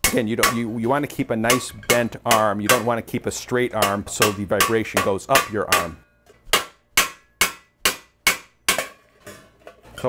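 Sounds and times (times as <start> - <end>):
hammer striking metal vase: 0.0 - 9.1.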